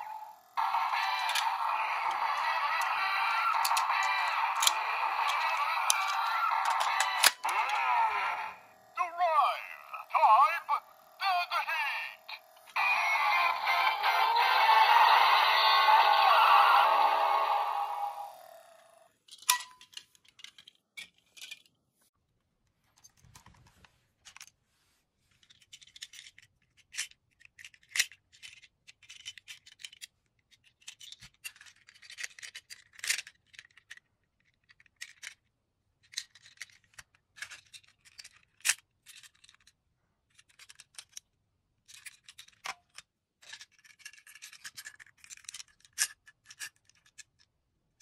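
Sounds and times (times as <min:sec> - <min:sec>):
electronic standby tune: 0:00.0 - 0:18.8
plastic toys clicking and rattling: 0:00.0 - 0:21.8, 0:25.3 - 0:48.0
plastic toy click: 0:01.2 - 0:07.8.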